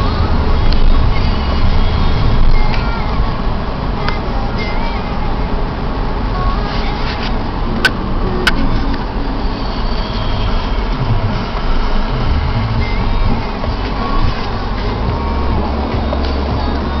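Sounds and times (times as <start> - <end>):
car engine and road noise: 0.0 - 17.0.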